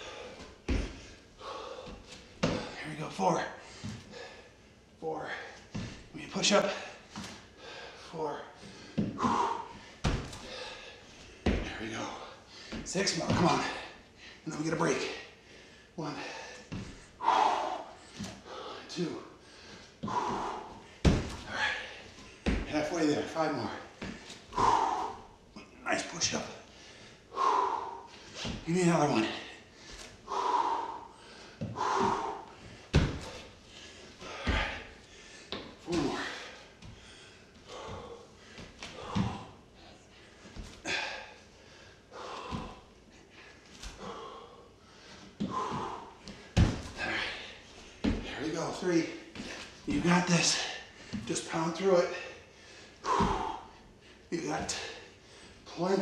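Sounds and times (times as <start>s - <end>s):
man breathing hard: 0.0s - 55.8s
thuds on wooden floor: 20.1s - 21.5s, 46.6s - 47.0s.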